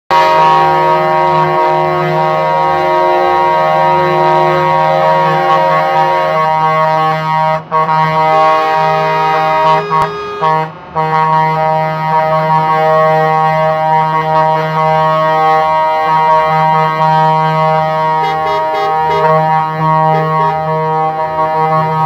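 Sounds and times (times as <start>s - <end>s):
truck horns sounding chord: 0.1s - 22.0s.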